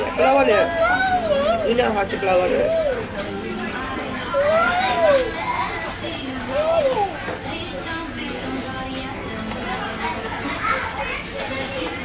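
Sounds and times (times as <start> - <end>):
children's voices and chatter: 0.0 - 12.0
high child's voice: 0.7 - 1.8, 4.3 - 5.8, 6.5 - 7.3, 10.4 - 11.8.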